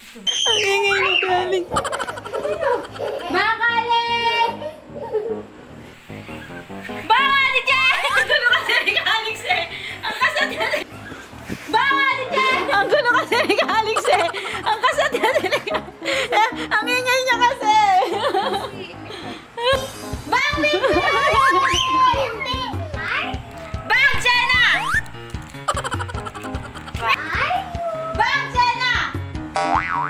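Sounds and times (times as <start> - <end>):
young women laughing: 0.5 - 3.5, 7.9 - 11.0, 12.4 - 16.6, 18.0 - 19.0, 20.6 - 22.2, 25.7 - 27.1
background music with low beat: 1.6 - 3.1, 19.6 - 30.0
children's excited voices: 20.5 - 25.0.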